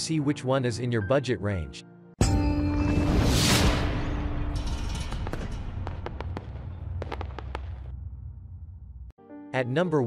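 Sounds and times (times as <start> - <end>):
sharp scattered crackles: 5.0 - 8.0.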